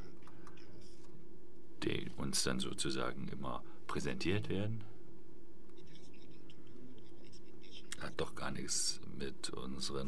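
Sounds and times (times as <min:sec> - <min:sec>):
steady low hum: 0:00.0 - 0:10.0
soft scratching: 0:00.6 - 0:01.2, 0:05.8 - 0:08.4.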